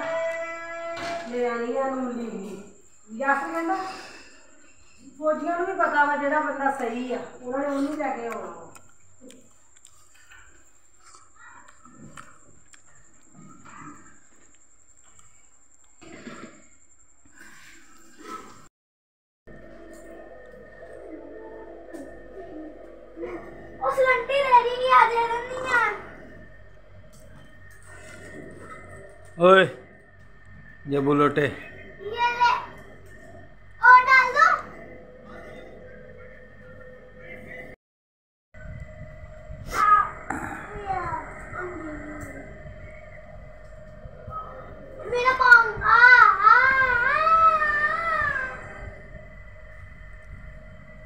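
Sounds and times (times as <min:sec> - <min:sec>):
low hum: 0:19.5 - 0:37.8, 0:38.6 - 0:51.0
child singing a wavering note: 0:44.3 - 0:49.1.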